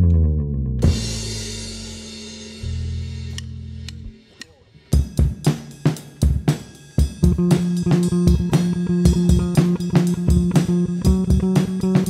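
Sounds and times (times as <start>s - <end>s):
low bass guitar notes: 0.0s - 4.2s, 7.2s - 12.0s
drum kit kick and snare hits: 5.0s - 12.0s.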